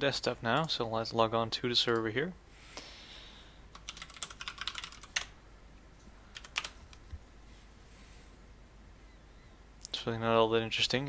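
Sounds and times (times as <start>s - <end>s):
typing on a computer keyboard: 3.7s - 5.3s, 6.3s - 6.8s.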